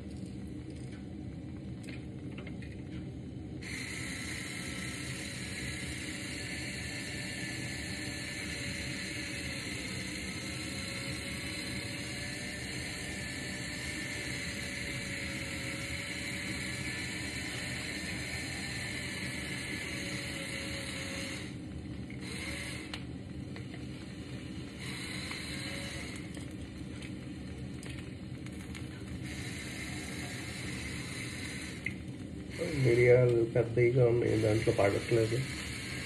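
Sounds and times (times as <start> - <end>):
electric pepper mill whirring: 3.6 - 36.0.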